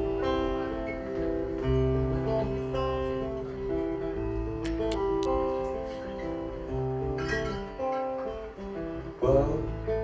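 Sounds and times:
guitar strumming chords: 0.0s - 10.0s.

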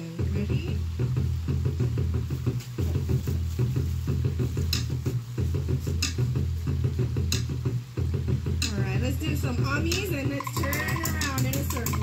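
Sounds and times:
fast drum music through speaker: 0.0s - 12.0s.

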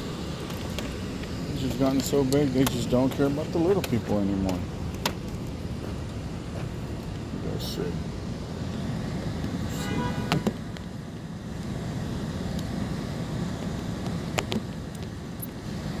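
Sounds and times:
steady low rumble: 0.0s - 9.8s.

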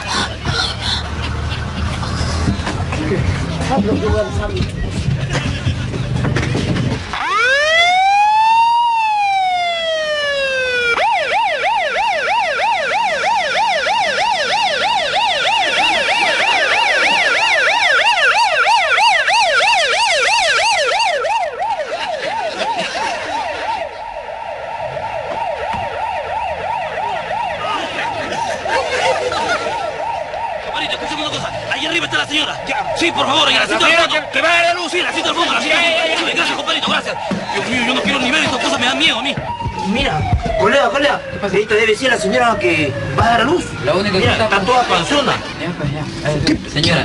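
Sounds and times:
ambulance siren wailing and yelping: 0.0s - 5.9s, 7.0s - 47.0s.

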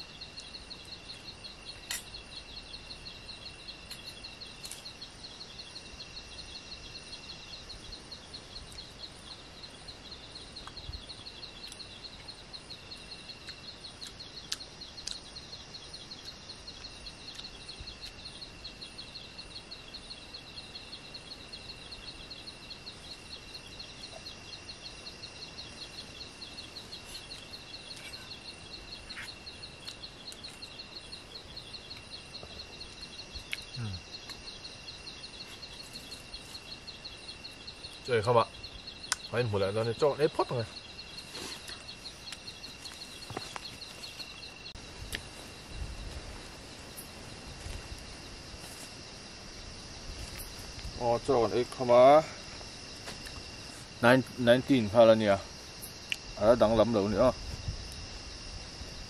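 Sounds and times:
pulsing high insect chirp: 0.0s - 59.0s
steady high insect whine: 0.0s - 59.0s.

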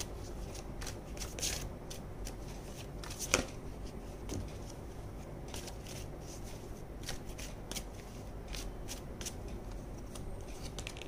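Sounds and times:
cards being shuffled: 0.0s - 4.8s, 5.5s - 11.0s.

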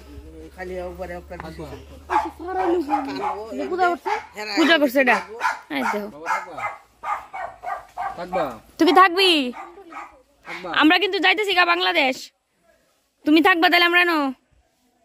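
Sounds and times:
people talking and calling out: 0.0s - 15.0s.

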